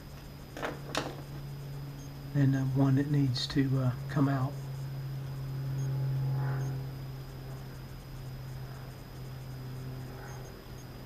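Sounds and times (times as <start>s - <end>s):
faint high-pitched whine: 0.0s - 11.0s
steady low hum: 0.0s - 11.0s.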